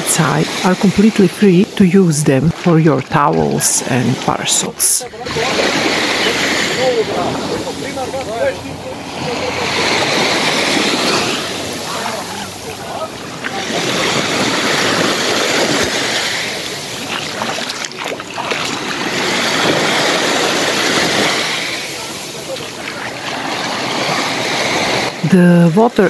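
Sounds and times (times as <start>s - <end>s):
small waves breaking on sand: 4.9s - 26.0s.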